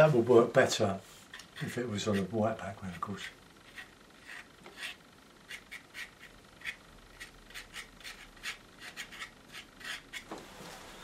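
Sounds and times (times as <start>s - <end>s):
palette knife scraping paint: 1.3s - 10.3s.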